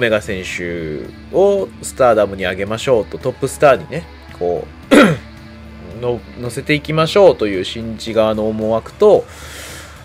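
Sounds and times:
man coughing: 4.9s - 5.3s.

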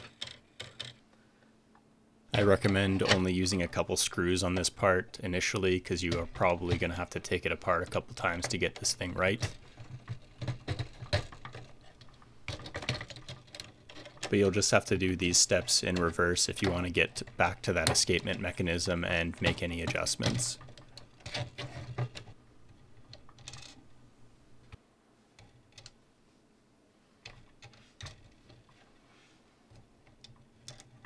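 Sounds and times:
plastic parts clicking: 0.0s - 1.0s, 5.5s - 14.4s
plastic parts clicking and tapping: 0.0s - 1.1s, 5.5s - 23.8s, 27.2s - 28.8s, 29.7s - 31.0s.

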